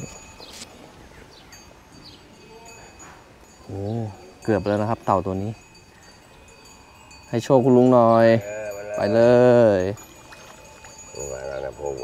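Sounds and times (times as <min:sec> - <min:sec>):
thin ringing tones: 0:00.0 - 0:12.0.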